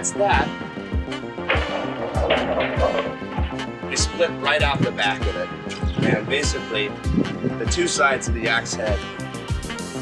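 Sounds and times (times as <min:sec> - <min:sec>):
burst of noise: 0:01.5 - 0:04.1
music with steady beat: 0:01.5 - 0:04.2.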